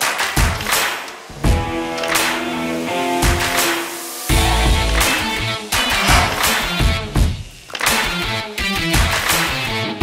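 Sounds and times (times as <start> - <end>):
music with a steady beat: 0.0 - 10.0.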